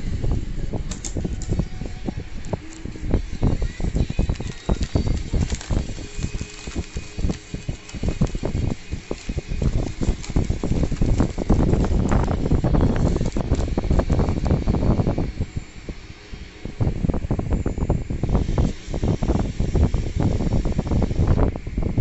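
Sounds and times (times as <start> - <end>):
plastic mailer crinkling: 0.9 - 15.5.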